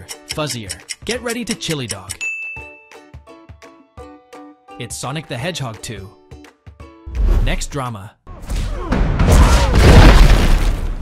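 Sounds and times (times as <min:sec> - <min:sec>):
light background music: 0:00.0 - 0:07.3.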